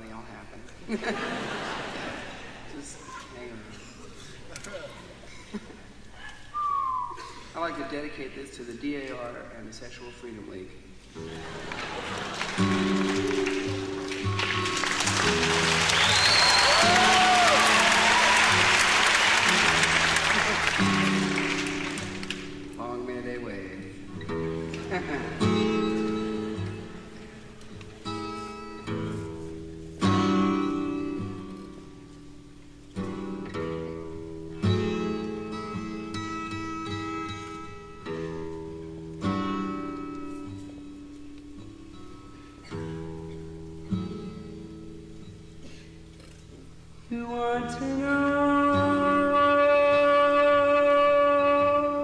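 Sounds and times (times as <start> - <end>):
audience laughing and applauding: 0.9 - 2.7, 11.2 - 22.6, 24.7 - 25.6
acoustic guitar playing: 10.5 - 52.0
crowd whooping: 11.3 - 22.5.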